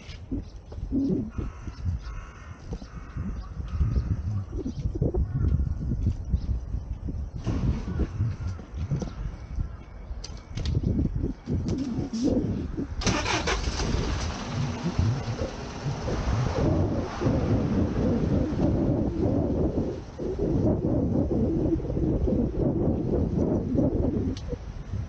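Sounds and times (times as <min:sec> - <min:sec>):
wind rumbling on microphone: 0:00.0 - 0:25.0
street traffic: 0:11.4 - 0:19.2.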